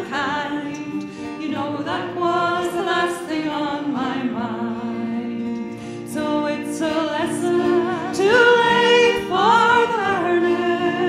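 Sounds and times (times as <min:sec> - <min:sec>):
strummed acoustic guitar: 0:00.0 - 0:11.0
women singing folk song: 0:00.0 - 0:11.0.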